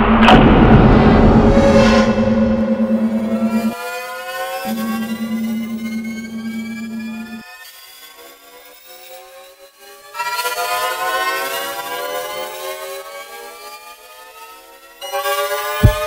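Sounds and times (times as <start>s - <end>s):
rising cluster of tones: 1.5s - 3.8s, 4.7s - 7.4s
low steady hum: 1.7s - 3.7s, 4.7s - 7.4s.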